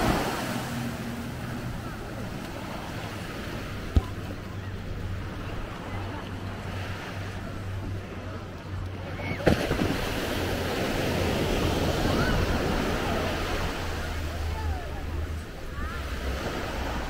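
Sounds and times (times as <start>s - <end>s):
surf washing onto beach: 0.0s - 8.4s.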